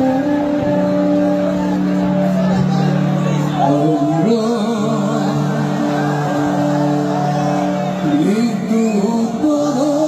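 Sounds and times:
crowd noise: 0.0 - 10.0
live rock band sustained chord: 0.0 - 10.0
person singing: 0.0 - 10.0.

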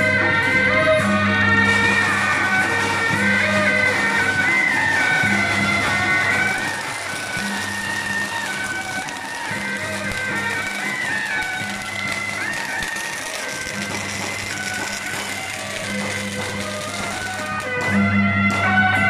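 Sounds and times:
shrill wind melody: 0.0 - 19.0.

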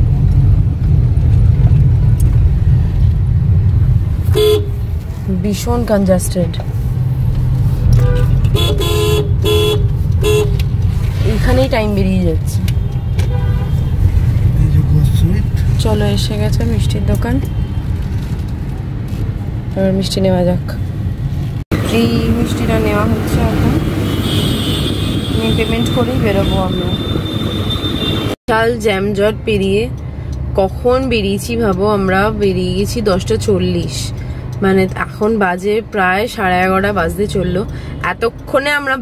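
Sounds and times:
car engine rumble and road noise: 0.0 - 39.0
car horn honking: 4.3 - 4.8, 7.8 - 10.6, 12.8 - 14.0, 23.8 - 28.4.

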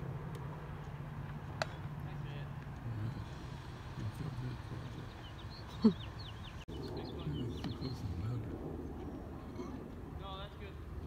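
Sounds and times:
distant voices: 0.0 - 11.0
motor vehicle humming: 0.0 - 11.0
sharp crack: 1.3 - 1.9.

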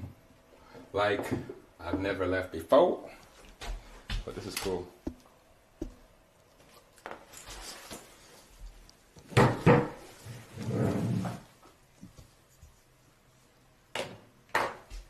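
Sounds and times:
fabric rustling and rubbing: 5.8 - 9.3, 9.9 - 13.6
rubbing scrape: 10.0 - 13.0.

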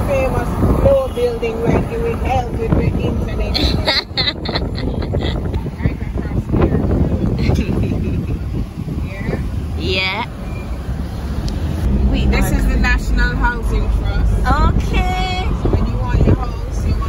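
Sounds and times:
car road and engine rumble: 0.0 - 17.0
voices: 0.0 - 17.0.

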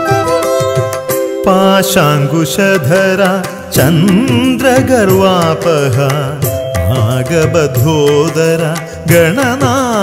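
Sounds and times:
instrumental passage: 0.0 - 8.6
person singing ornamented melody: 0.0 - 10.0.

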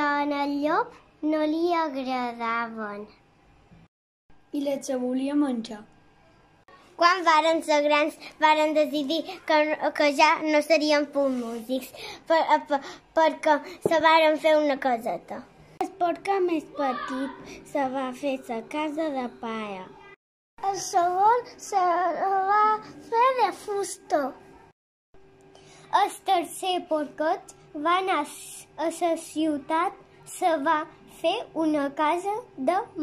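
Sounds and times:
child reciting sing-song: 15.9 - 19.9.

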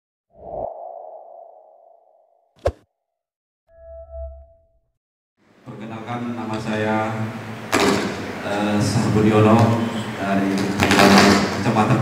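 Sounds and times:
ringing tone: 3.7 - 4.8.

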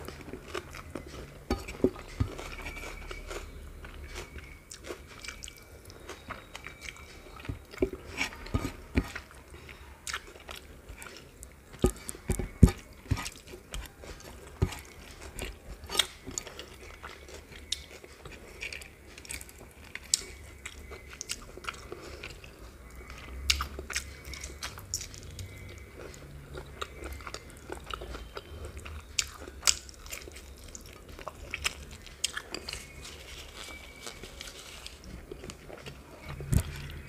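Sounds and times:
close chewing: 0.0 - 37.0.

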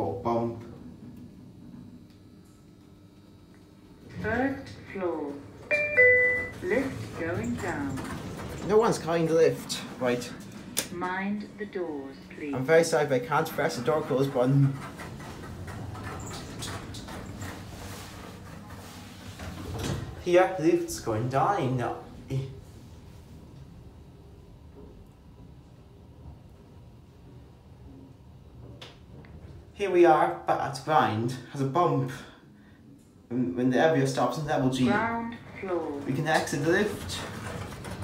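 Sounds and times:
faint lift hum: 0.0 - 38.0.

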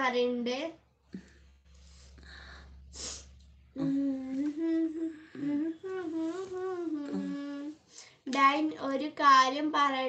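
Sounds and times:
person humming a slow tune: 3.7 - 7.9.

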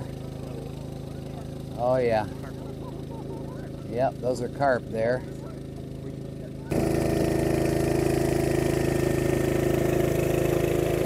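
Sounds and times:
gas generator humming: 0.0 - 11.0.

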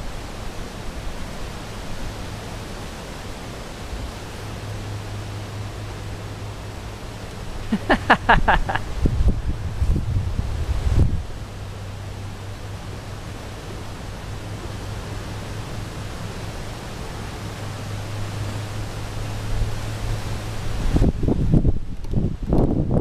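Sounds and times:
steady outdoor hiss: 0.0 - 23.0
wind buffeting microphone: 8.4 - 11.5, 19.4 - 23.0.

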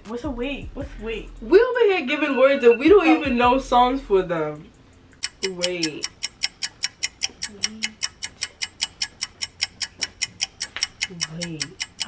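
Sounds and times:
clock ticking: 2.6 - 3.7, 5.2 - 12.0.

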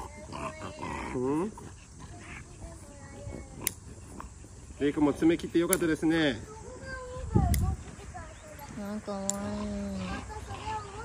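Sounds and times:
dog vocalizing in protest: 0.0 - 5.7, 9.4 - 11.0.

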